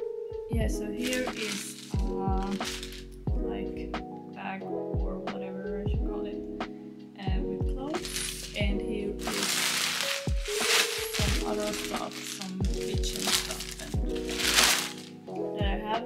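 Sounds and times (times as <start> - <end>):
plastic trash bag rustling: 0.9 - 3.2, 7.9 - 15.2
music with deep beat: 2.0 - 3.8, 7.3 - 9.4, 11.2 - 14.7, 15.6 - 16.0.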